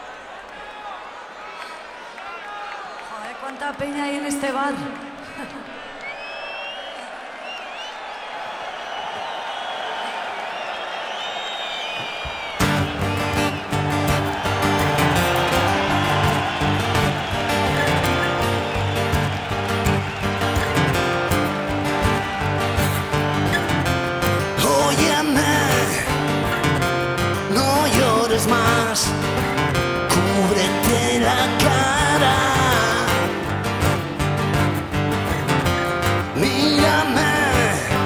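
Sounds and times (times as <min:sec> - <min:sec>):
crowd cheering and whistling: 0:00.0 - 0:03.8, 0:04.9 - 0:38.0
rock band playing: 0:12.5 - 0:38.0.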